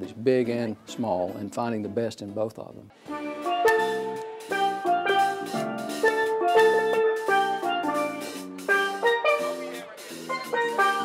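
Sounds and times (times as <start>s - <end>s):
steel band playing: 3.0s - 11.0s.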